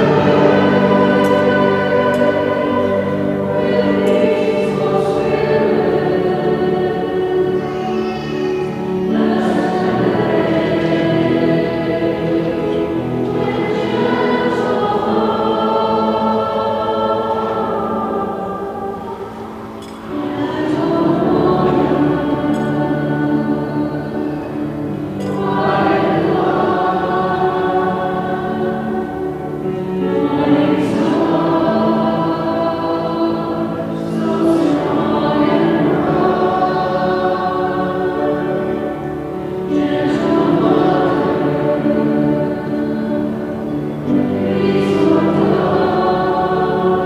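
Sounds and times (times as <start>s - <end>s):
choir singing a held chord: 0.0s - 47.0s.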